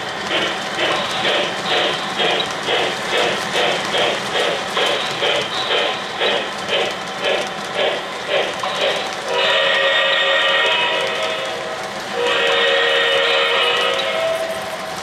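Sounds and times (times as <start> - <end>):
model steam locomotive chuffing: 0.0 - 15.0
steam whistle blasts: 9.3 - 14.9.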